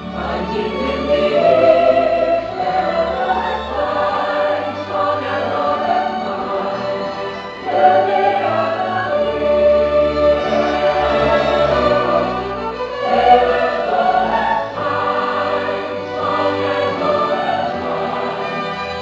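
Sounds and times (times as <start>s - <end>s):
choir singing: 0.0s - 19.0s
orchestral music: 0.0s - 19.0s.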